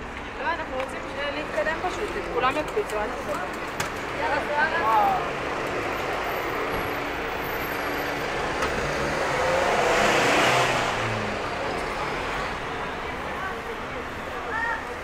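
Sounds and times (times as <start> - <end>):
vehicle passing on road: 3.4 - 15.0.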